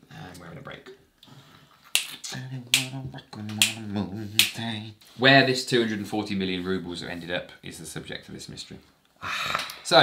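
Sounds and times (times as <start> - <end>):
man vocalising wordlessly: 2.1 - 5.0.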